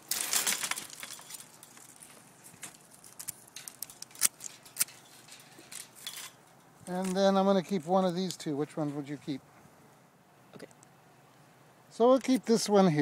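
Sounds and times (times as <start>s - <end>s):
rustle of cut wood: 0.0s - 7.3s
pruning shears clicking: 2.7s - 8.5s.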